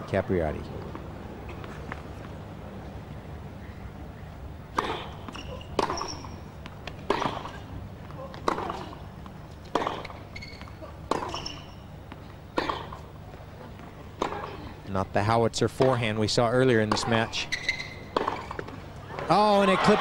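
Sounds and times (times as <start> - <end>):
steady low hum: 0.0 - 19.3
tennis ball hit with rackets: 4.7 - 7.6, 8.3 - 10.2, 14.2 - 14.6, 18.1 - 18.8
short high squeaks: 4.8 - 6.5, 9.9 - 12.0, 17.4 - 18.6.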